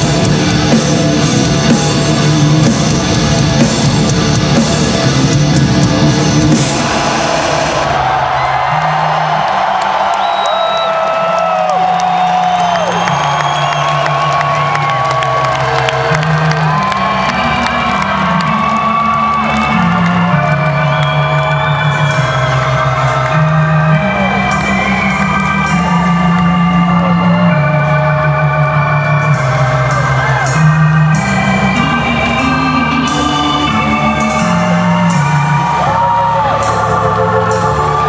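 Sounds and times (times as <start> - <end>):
arena crowd cheering: 5.8 - 38.0
whistles and whoops: 9.5 - 15.5, 16.7 - 23.1.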